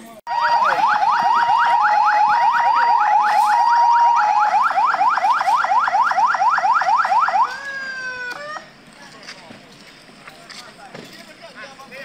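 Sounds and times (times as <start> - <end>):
electronic siren yelping: 0.3 - 8.7.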